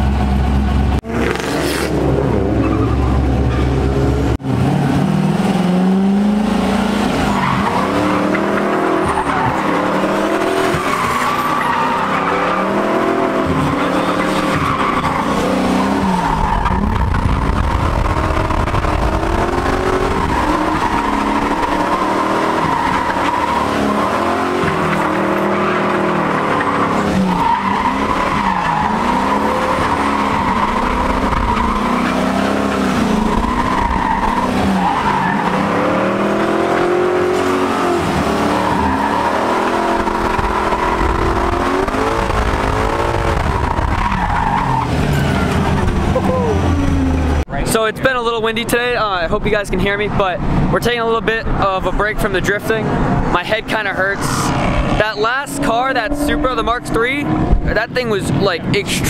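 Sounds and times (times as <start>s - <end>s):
car engine revving: 0.0s - 47.7s, 50.4s - 59.0s
tire squeal: 1.1s - 4.1s, 7.0s - 47.3s.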